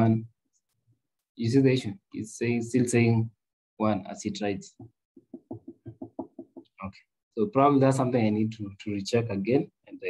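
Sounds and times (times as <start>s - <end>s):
soft knocks: 4.8s - 6.8s.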